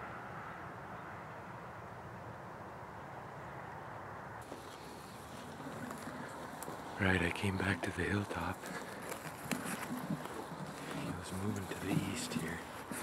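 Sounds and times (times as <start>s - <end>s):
footsteps through dry frosty grass: 4.4s - 13.0s.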